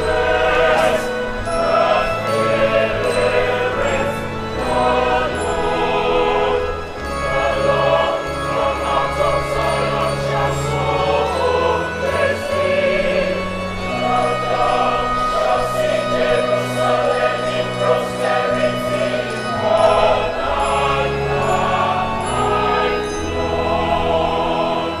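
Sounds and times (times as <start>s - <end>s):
mixed choir singing in harmony: 0.0s - 25.0s.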